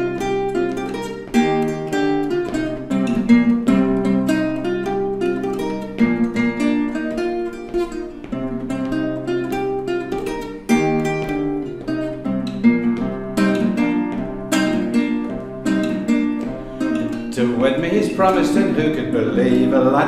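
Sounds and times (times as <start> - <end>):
fingerpicked acoustic guitar: 0.0 - 20.0.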